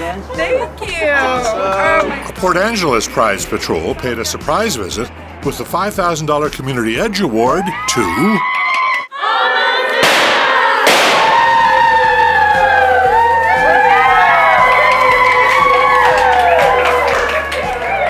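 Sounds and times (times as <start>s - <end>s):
background music: 0.0s - 8.6s, 10.9s - 18.0s
women squealing and cheering: 7.4s - 9.3s, 10.6s - 18.0s
sharp bang: 10.0s - 11.7s.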